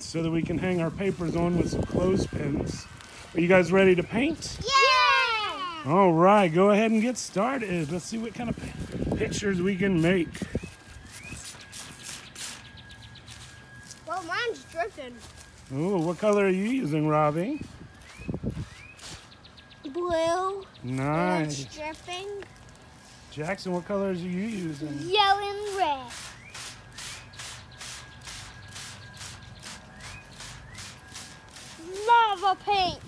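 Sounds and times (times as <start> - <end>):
spray bottle hiss: 25.6 - 32.4.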